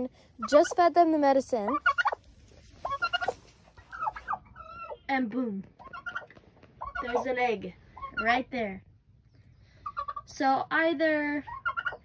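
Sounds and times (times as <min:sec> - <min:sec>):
turkeys calling: 0:00.4 - 0:01.0, 0:01.6 - 0:08.6, 0:09.6 - 0:10.3, 0:11.4 - 0:12.0.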